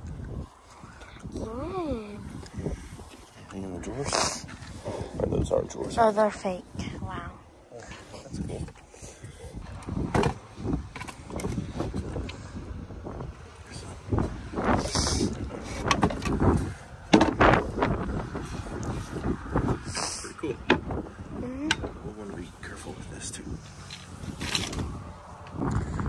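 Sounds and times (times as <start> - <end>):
wooden knocks and clunks: 9.7 - 12.2, 15.7 - 18.5, 20.6 - 21.0.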